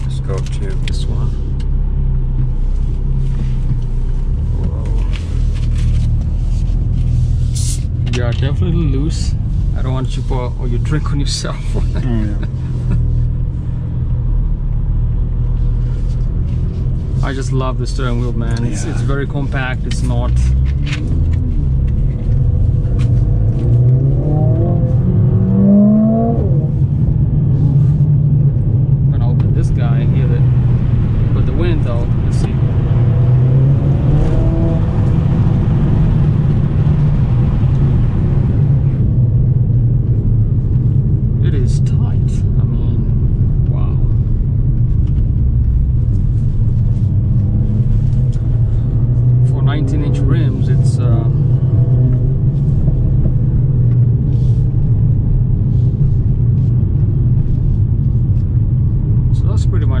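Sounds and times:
car engine and road noise drone: 0:00.0 - 1:00.0.

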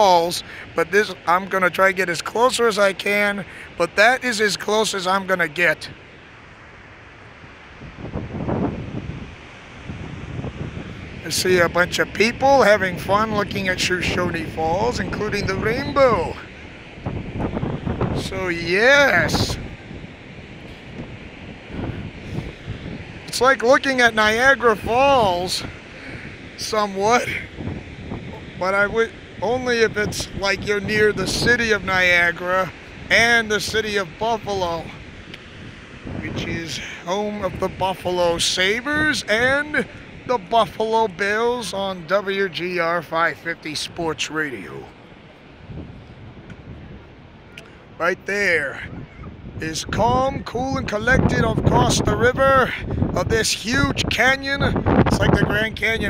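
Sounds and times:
waterfall rushing: 0:00.0 - 0:45.6
wind buffeting microphone: 0:00.0 - 0:56.0.

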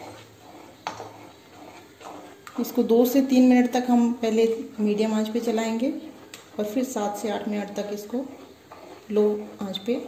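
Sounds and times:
spoon stirring batter: 0:00.0 - 0:10.0.

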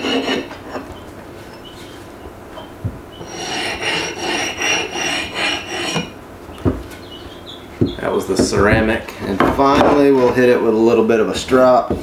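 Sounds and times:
hone rubbing along axe edge: 0:02.6 - 0:06.2.

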